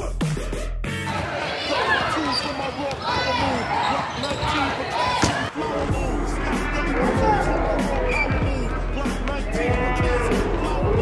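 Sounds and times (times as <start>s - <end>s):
students chatting: 1.1s - 11.0s.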